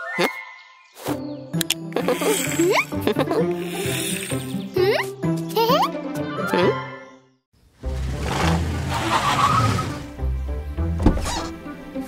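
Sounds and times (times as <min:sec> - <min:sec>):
road noise: 0:07.6 - 0:11.4
cartoon small car engine: 0:07.9 - 0:10.1.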